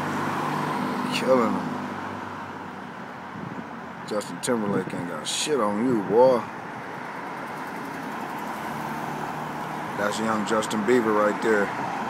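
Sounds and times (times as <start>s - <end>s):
pickup truck driving past: 6.9s - 12.0s.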